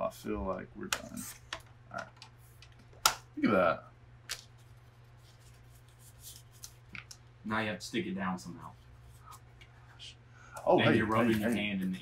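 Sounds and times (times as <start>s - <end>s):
quiet paper handling: 0.4s - 3.0s, 4.3s - 7.2s, 8.4s - 12.0s.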